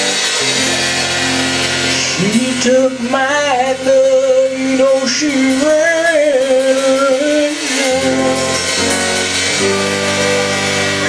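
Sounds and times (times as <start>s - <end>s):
low bass note: 0.0s - 4.9s
live band playing: 0.0s - 11.0s.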